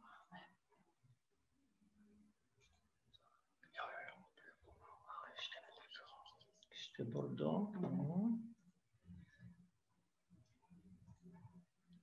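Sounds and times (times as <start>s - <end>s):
person whispering: 0.0s - 0.6s, 3.6s - 7.1s.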